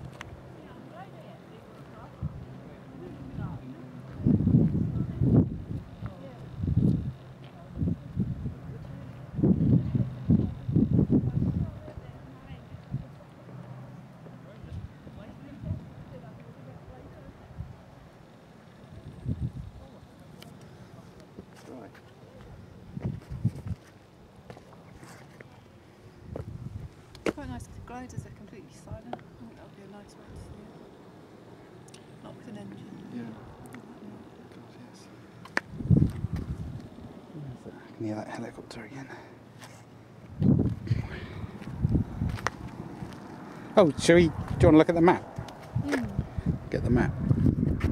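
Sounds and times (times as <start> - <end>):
wind buffeting microphone: 2.0 - 13.2, 14.6 - 16.2, 18.9 - 19.9, 22.5 - 23.8, 26.1 - 29.7, 35.6 - 37.6, 40.2 - 47.9.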